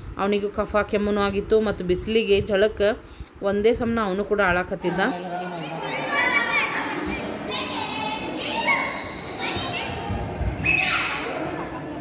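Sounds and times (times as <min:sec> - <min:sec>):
crowd murmur in a hall: 0:05.1 - 0:12.0
children calling out: 0:05.2 - 0:12.0.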